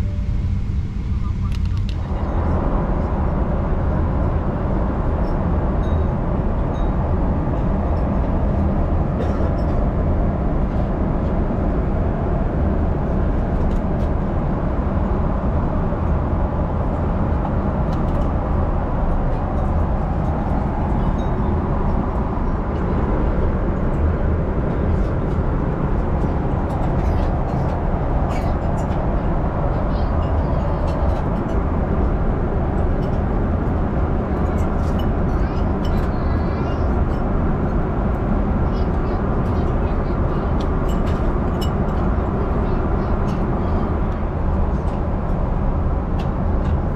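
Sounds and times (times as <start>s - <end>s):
jet airliner cabin drone: 0.0s - 46.9s.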